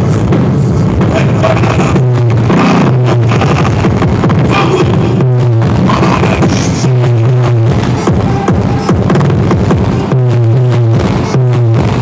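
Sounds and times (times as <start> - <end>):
electronic dance music: 0.0 - 12.0
heavy held bass note: 1.8 - 12.0.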